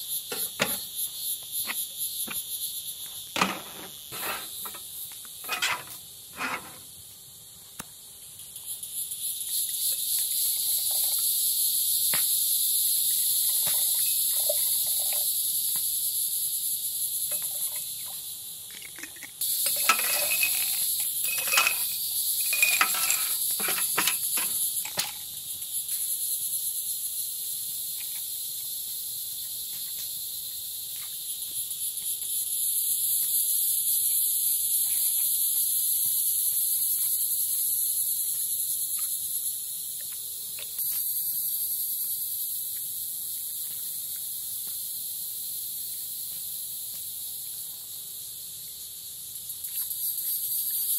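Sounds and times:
crickets chirping: 0.0s - 50.9s
ice cubes clinking into glass jars: 18.8s - 24.2s.

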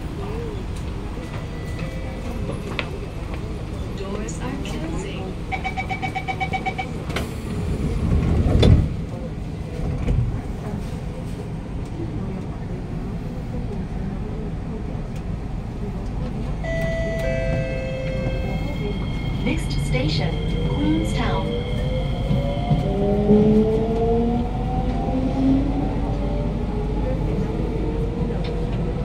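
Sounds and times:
train rumbling: 0.0s - 29.0s
train doors shutting: 0.2s - 10.4s, 16.0s - 24.2s.

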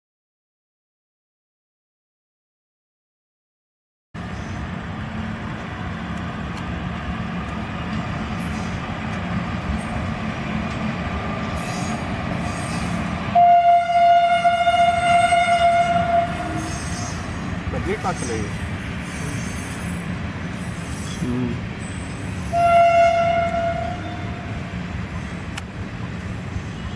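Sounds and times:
train wheels rumbling on rails: 4.2s - 26.9s
locomotive horn blast: 13.3s - 16.8s, 22.5s - 24.5s.

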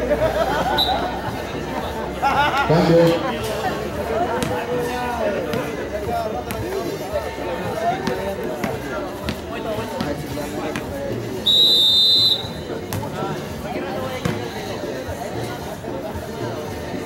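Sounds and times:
spectators talking and calling out: 0.0s - 17.0s
referee whistle blast: 11.4s - 12.7s.

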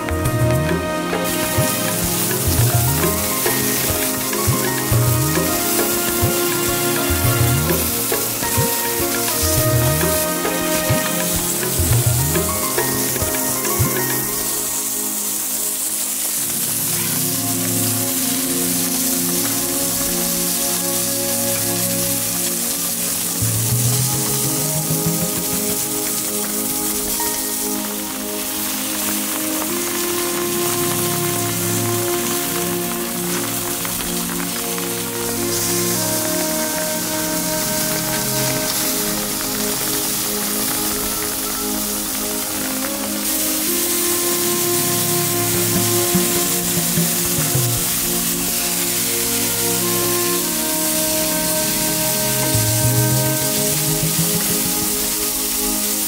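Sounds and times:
background music sustained notes: 0.0s - 56.0s
meat sizzling on grill: 0.0s - 56.0s.

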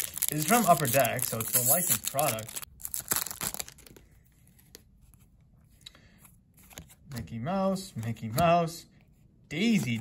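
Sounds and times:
foil wrapper crinkling: 0.0s - 4.0s.

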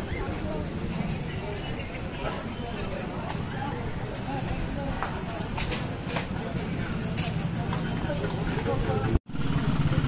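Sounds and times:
people chattering: 0.0s - 9.2s
vehicle engines rumbling: 0.0s - 10.0s.

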